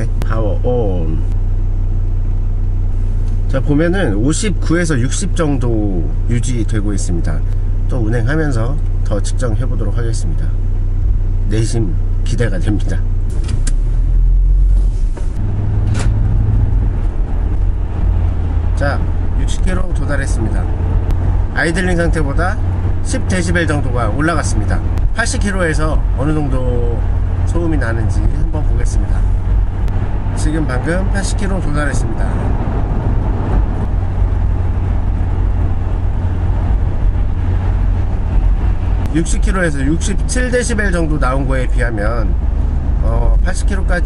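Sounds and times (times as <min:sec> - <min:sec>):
car cabin engine and road drone: 0:00.0 - 0:44.0.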